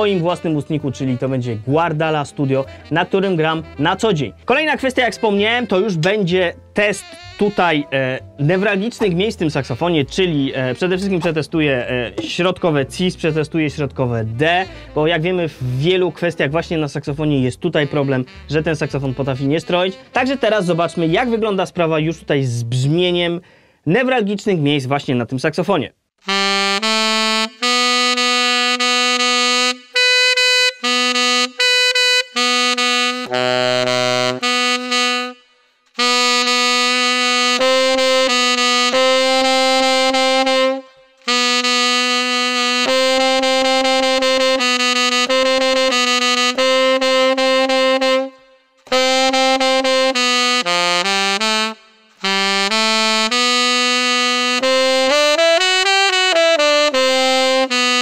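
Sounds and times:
tenor saxophone held notes: 0.0s - 9.4s, 17.7s - 21.4s, 26.2s - 58.0s
player's short breaths: 23.4s - 23.9s.

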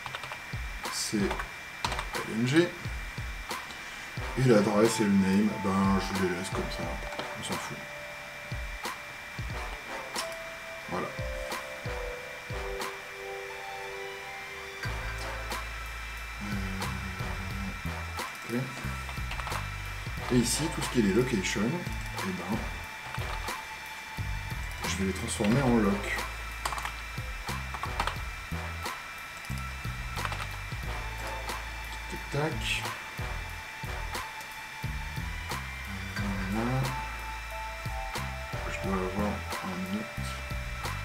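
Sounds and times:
computer keyboard clicking: 0.0s - 0.4s, 1.3s - 2.2s, 26.6s - 27.0s, 30.2s - 30.6s
high-pitched whine: 0.0s - 41.0s
low hum shifting pitch: 4.2s - 28.9s, 29.5s - 41.0s
sustained low tones: 4.3s - 28.9s
keyboard keys clicking: 26.6s - 27.0s.

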